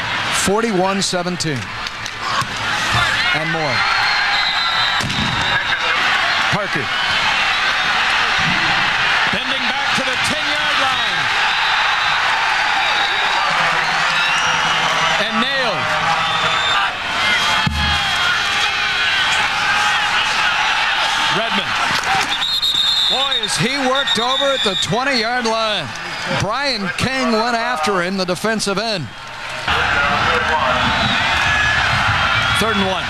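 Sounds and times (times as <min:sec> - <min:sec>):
stadium crowd din: 0:00.0 - 0:33.0.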